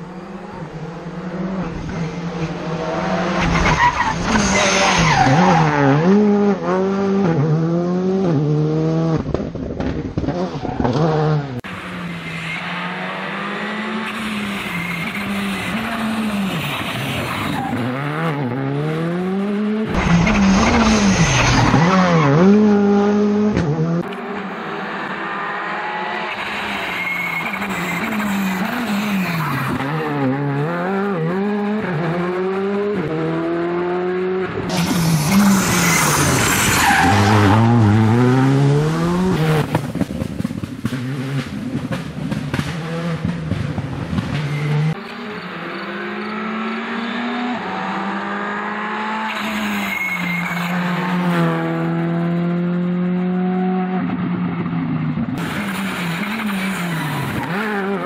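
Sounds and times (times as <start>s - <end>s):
rally car engine revving hard: 0.6s - 26.8s, 27.5s - 54.6s, 55.2s - 58.0s
tyres squealing: 26.3s - 30.0s, 49.3s - 51.0s.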